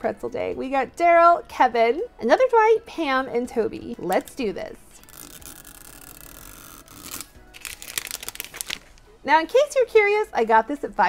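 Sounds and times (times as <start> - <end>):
plastic wrapper ripping: 5.0 - 9.0
plastic wrapper crinkling: 5.0 - 9.1.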